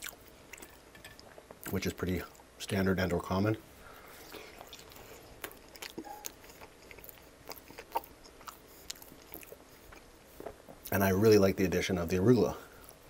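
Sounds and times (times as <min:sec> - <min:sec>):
chewing pizza crust: 0:00.0 - 0:02.4, 0:04.1 - 0:11.1.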